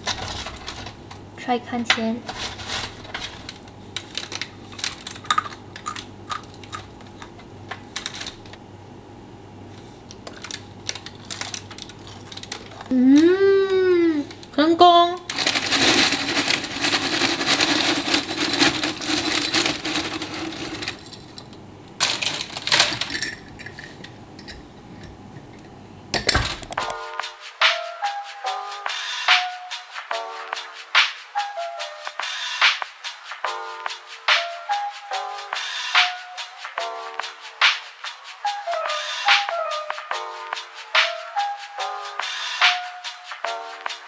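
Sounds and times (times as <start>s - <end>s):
person humming: 12.9s - 14.4s.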